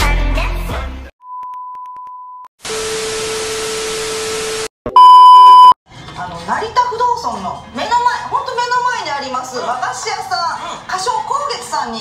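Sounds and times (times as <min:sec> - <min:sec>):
faint steady beep: 0:04.9 - 0:05.8
short loud beep: 0:04.9 - 0:05.8.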